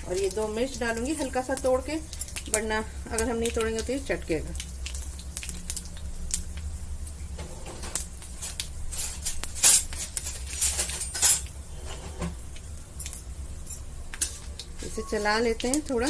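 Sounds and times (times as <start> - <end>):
spices crackling in hot oil: 0.0 - 16.0.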